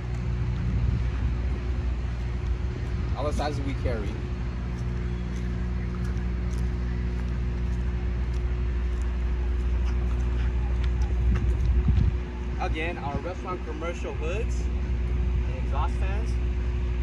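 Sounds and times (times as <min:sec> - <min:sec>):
low mechanical hum: 0:00.0 - 0:17.0.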